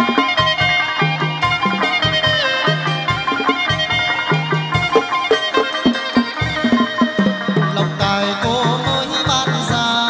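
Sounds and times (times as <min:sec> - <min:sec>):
plucked lute notes: 0:00.0 - 0:10.0.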